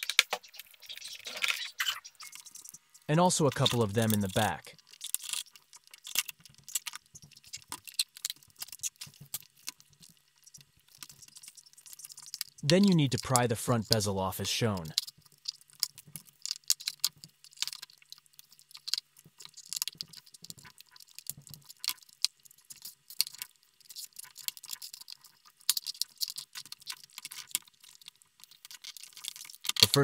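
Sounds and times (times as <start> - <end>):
plastic clicking and crackling: 0.0 - 14.0, 14.8 - 30.0.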